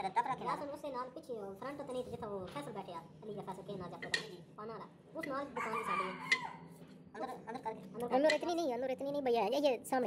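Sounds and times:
rooster crowing: 0:05.6 - 0:06.7.

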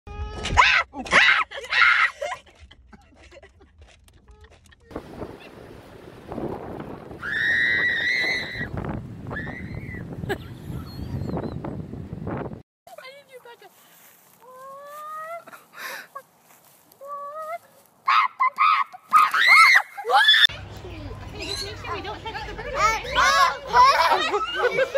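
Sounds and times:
wind buffeting microphone: 0:04.9 - 0:12.6
woman shrieking: 0:14.4 - 0:15.6, 0:17.0 - 0:20.5
seagull calling: 0:21.3 - 0:22.0.

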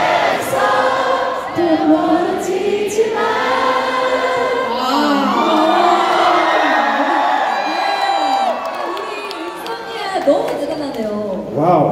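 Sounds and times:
voices singing together: 0:00.0 - 0:08.1
crowd noise: 0:00.0 - 0:11.8.

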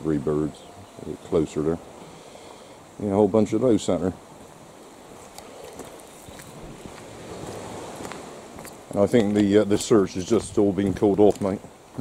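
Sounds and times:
distant sea: 0:00.0 - 0:12.0
wind: 0:00.0 - 0:12.0.

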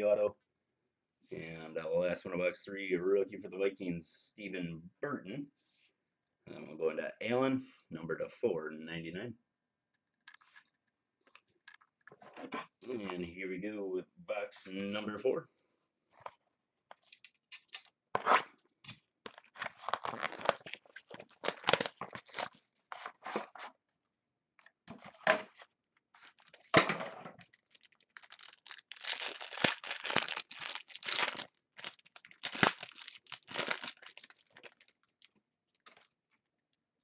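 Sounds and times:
packaging tearing and crinkling: 0:19.2 - 0:22.6, 0:26.2 - 0:26.8, 0:27.4 - 0:36.1.

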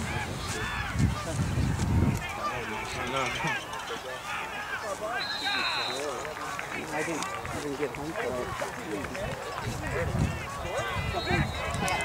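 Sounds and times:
people shouting: 0:02.2 - 0:06.2, 0:08.2 - 0:12.0
referee whistle blast: 0:05.2 - 0:06.1, 0:11.1 - 0:11.8.

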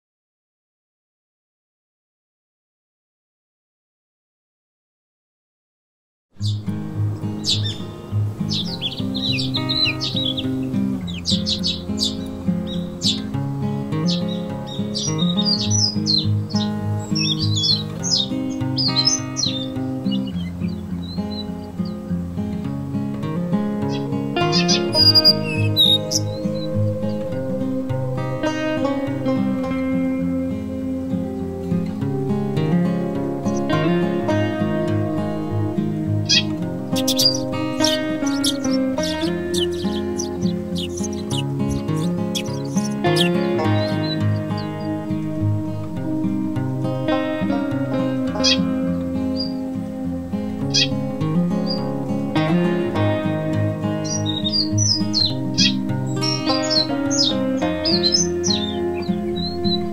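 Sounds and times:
background music: 0:06.4 - 0:59.9
quick high bird-like chirps: 0:07.4 - 0:07.9, 0:14.0 - 0:21.6, 0:23.9 - 0:28.7, 0:36.3 - 0:45.0, 0:54.0 - 0:59.9.

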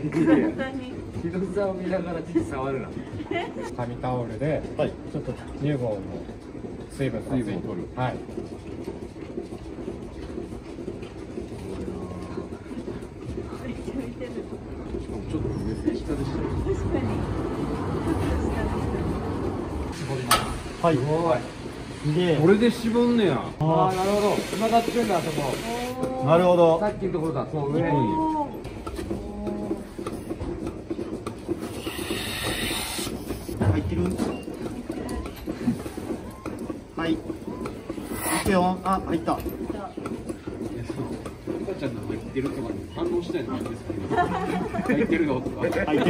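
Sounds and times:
dairy barn machinery running: 0:00.0 - 0:46.0
air hissing through cups: 0:23.8 - 0:26.0, 0:31.6 - 0:33.6.

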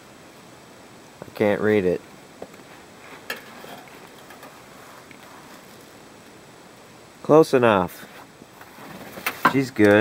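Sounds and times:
dipstick scraping and rustling: 0:02.5 - 0:05.9.

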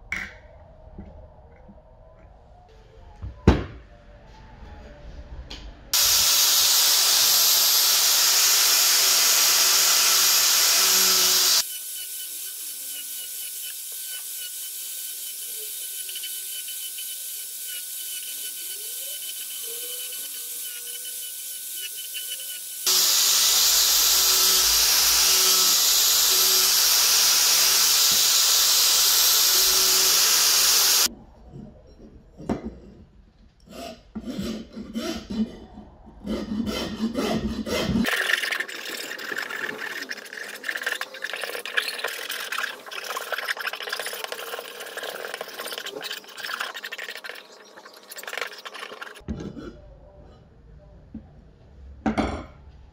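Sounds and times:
angle grinder sanding wood: 0:06.0 - 0:31.1
hand file rasping wood: 0:33.8 - 0:35.6, 0:36.2 - 0:38.1.

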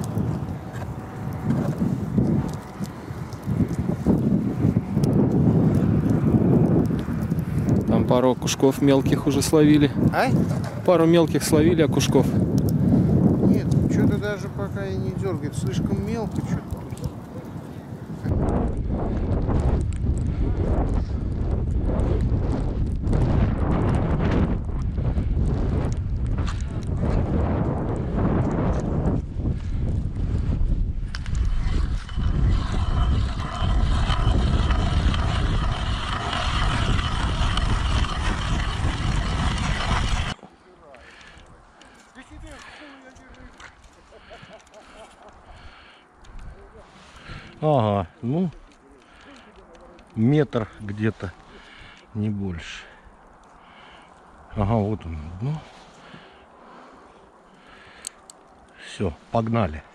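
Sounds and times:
wind buffeting microphone: 0:00.0 - 0:40.4, 0:41.0 - 0:56.9.

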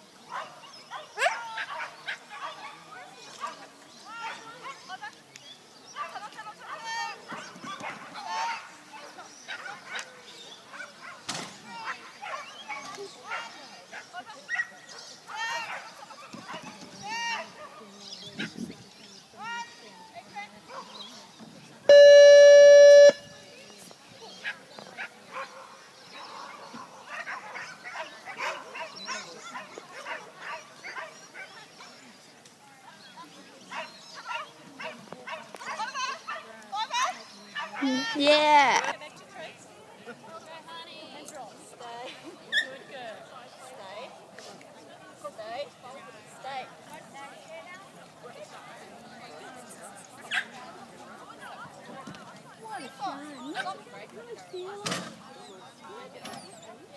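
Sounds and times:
dog barking: 0:24.4 - 0:31.5.

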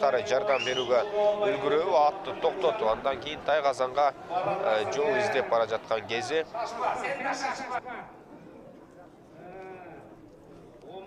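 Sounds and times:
faint background noise: 0:00.0 - 0:11.0.

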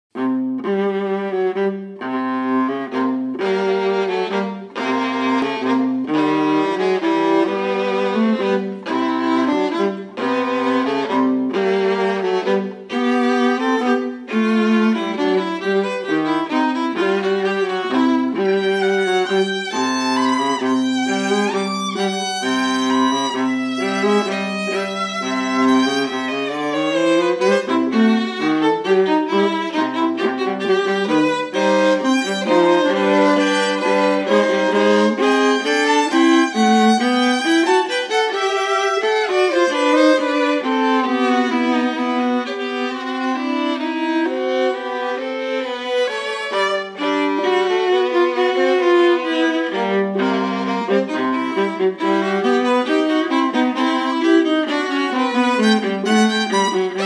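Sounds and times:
viola: 0:00.1 - 0:57.0
violin: 0:00.1 - 0:57.0.

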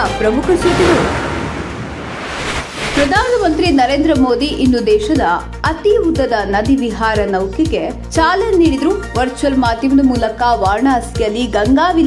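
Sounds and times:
rushing whoosh sound effect: 0:00.6 - 0:03.8.

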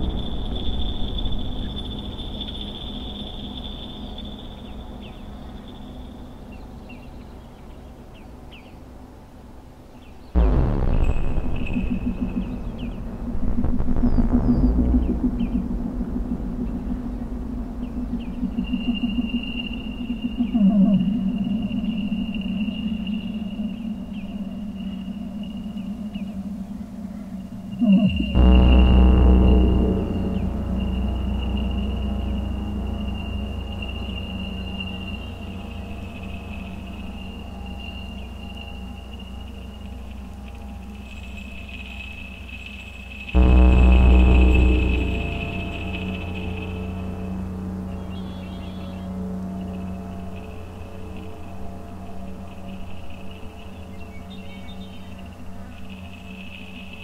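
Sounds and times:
deep bass swell: 0:00.0 - 0:02.7, 0:10.4 - 0:41.5, 0:43.1 - 0:54.7
electronic synthesizer drones: 0:00.0 - 0:57.0.

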